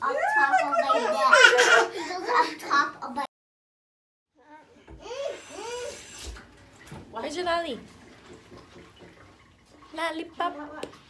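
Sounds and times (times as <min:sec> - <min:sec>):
child wordless calls: 0:04.4 - 0:06.1.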